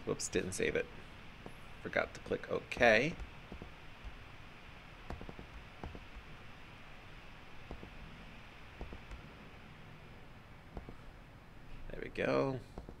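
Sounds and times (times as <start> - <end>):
low room hiss: 0.0 - 13.0
computer mouse clicking: 5.1 - 6.1.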